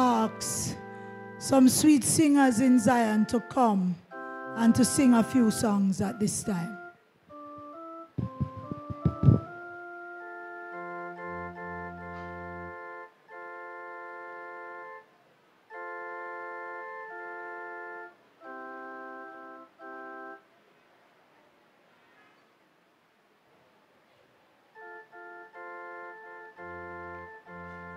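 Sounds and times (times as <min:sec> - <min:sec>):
organ playing sustained chords: 0:00.0 - 0:20.4, 0:24.8 - 0:27.9
loud low thumps: 0:08.2 - 0:09.6.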